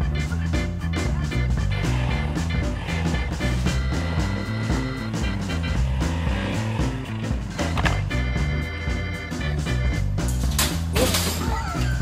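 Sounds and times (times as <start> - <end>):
upbeat background music: 0.0 - 12.0.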